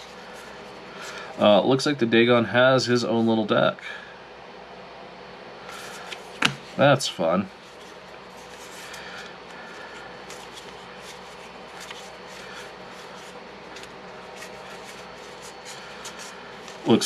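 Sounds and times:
faint room hum: 0.0s - 17.0s
playing cards being shuffled: 5.7s - 6.8s, 7.6s - 17.0s.

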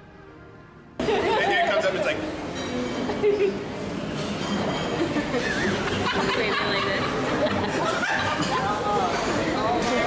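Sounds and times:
people chattering: 4.8s - 10.0s.

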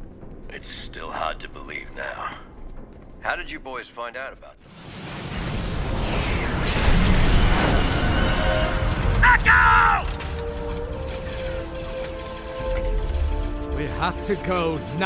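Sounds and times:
rumbling explosions: 4.6s - 15.0s.

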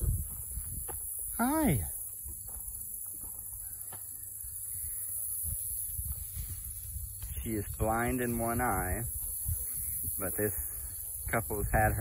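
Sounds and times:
wind rumble on microphone: 0.0s - 2.7s, 4.7s - 12.0s
insects hissing in grass: 0.0s - 12.0s.

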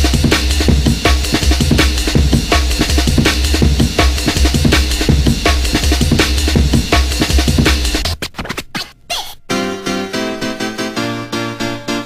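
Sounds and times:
sustained keyboard chords: 0.0s - 8.1s, 9.4s - 12.0s
turntable scratching: 0.0s - 9.6s.

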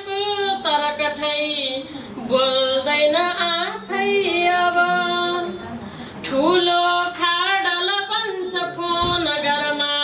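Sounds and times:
woman singing unaccompanied: 0.0s - 5.7s, 6.3s - 10.0s.

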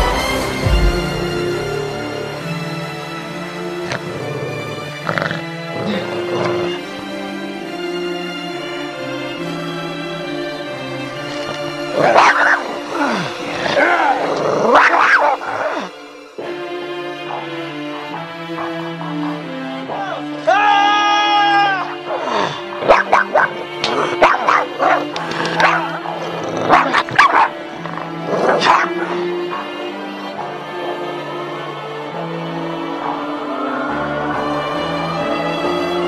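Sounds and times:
horror music with held notes: 0.0s - 36.0s
animal growling and roaring: 1.5s - 7.0s, 11.2s - 16.0s, 21.8s - 31.2s
small dog barking and yipping: 22.8s - 27.6s.

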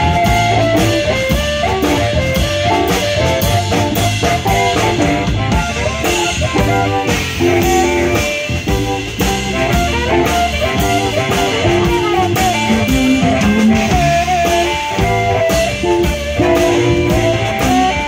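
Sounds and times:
blues band playing: 0.0s - 18.0s
blues harmonica lead notes: 0.0s - 18.0s.

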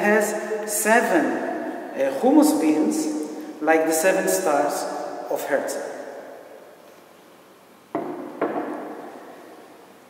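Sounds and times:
hard object knocking on surface: 7.9s - 9.0s.

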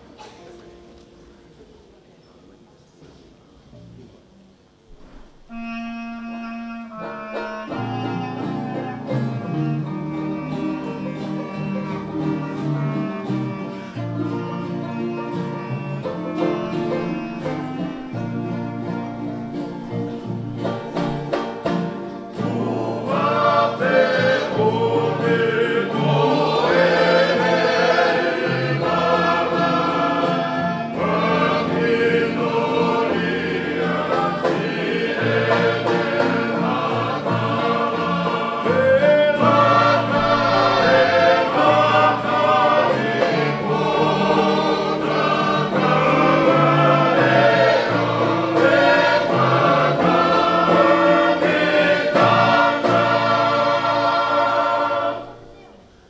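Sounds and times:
strummed guitars ukuleles and banjo: 6.9s - 56.0s
men singing in harmony: 22.4s - 55.3s.

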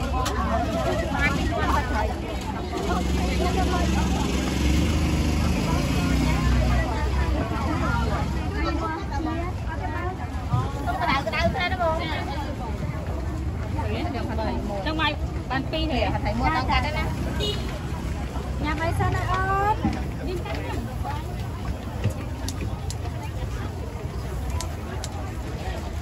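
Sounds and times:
chatter of voices: 0.0s - 26.0s
vehicle engine passing by: 0.7s - 8.6s.

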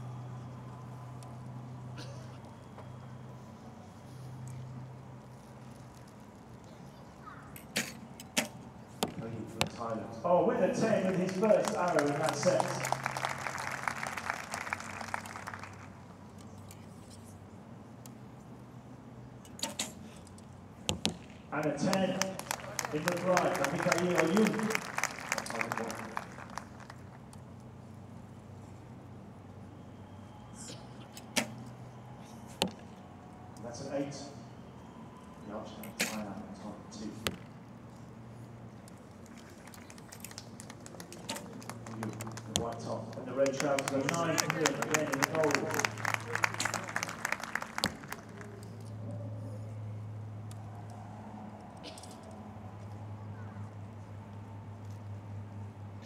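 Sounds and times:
low steady hum: 0.0s - 56.0s
arrows striking targets: 7.6s - 9.8s, 19.5s - 20.1s, 31.2s - 31.6s, 35.9s - 36.2s.

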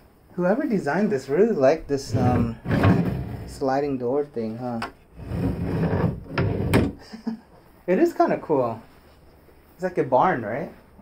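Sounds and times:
sliding door rumbling on track: 2.0s - 3.6s.

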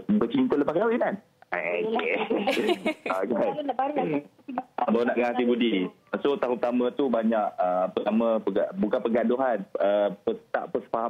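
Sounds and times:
person talking over phone line: 0.0s - 11.0s.

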